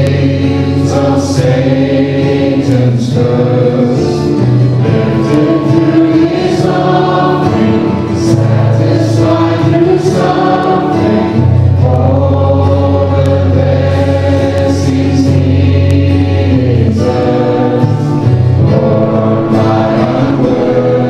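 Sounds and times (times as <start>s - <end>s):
choir singing held notes: 0.0s - 21.0s
instrumental accompaniment: 0.0s - 21.0s
steady bass line: 0.0s - 21.0s.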